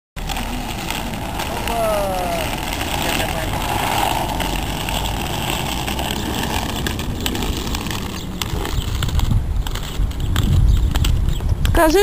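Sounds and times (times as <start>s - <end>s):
skate wheels rolling on asphalt: 0.2s - 12.0s.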